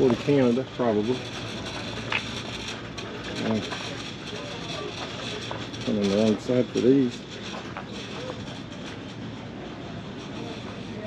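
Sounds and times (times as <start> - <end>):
faint voices: 0.0 - 11.0
mechanical rumble: 0.0 - 11.0
outdoor noise: 0.0 - 11.0.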